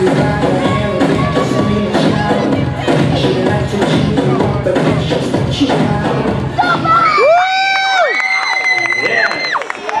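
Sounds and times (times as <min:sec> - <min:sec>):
dance music: 0:00.0 - 0:09.5
high-pitched screams: 0:06.6 - 0:09.6
audience cheering: 0:07.1 - 0:10.0
people clapping: 0:07.6 - 0:10.0.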